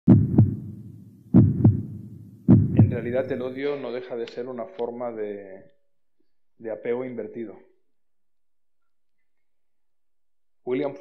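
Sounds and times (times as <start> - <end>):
heartbeat thumps: 0.1 - 3.5.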